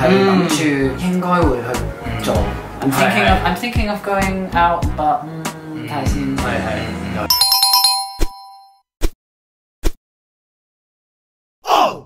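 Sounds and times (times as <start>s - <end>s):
bright ringing chime notes: 7.3s - 8.8s.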